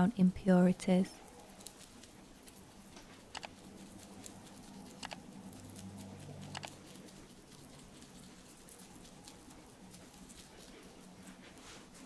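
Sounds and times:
small sticky clicks: 0:01.2 - 0:11.3
fingertips rubbing skin: 0:01.2 - 0:12.0.

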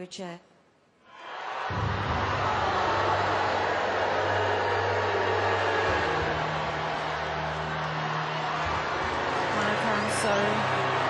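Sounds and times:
audience roaring: 0:01.1 - 0:11.0.

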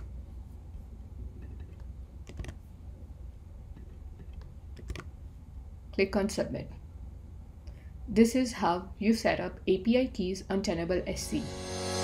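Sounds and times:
computer keyboard keystrokes: 0:01.6 - 0:02.6, 0:04.2 - 0:05.1.

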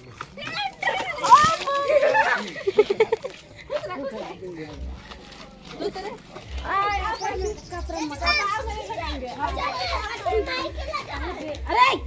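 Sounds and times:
people shouting and chattering: 0:00.0 - 0:12.0.

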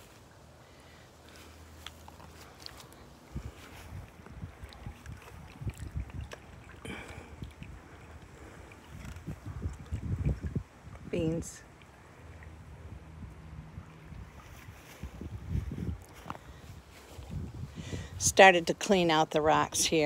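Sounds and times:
faint ticks and rustles: 0:01.2 - 0:06.4
wind buffeting microphone: 0:03.2 - 0:11.6, 0:12.2 - 0:18.6.

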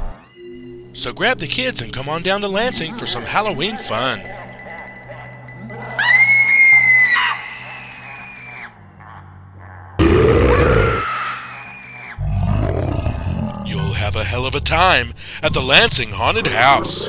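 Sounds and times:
high-pitched scream: 0:05.9 - 0:08.7, 0:10.3 - 0:12.2
low growl: 0:10.0 - 0:11.0, 0:12.2 - 0:15.6
loud cry with deep roar: 0:10.0 - 0:11.4, 0:12.1 - 0:14.0
steady low drone: 0:12.3 - 0:17.0.

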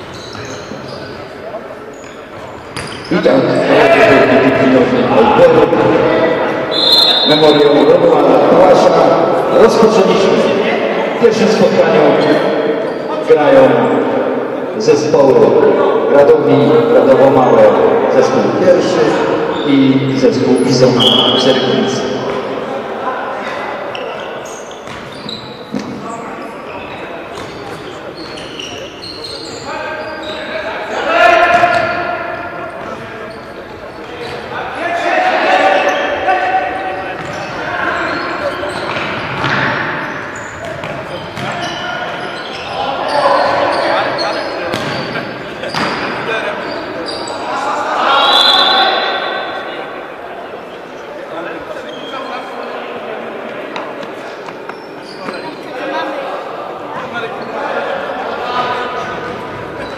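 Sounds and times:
players shouting: 0:29.3 - 0:50.2.

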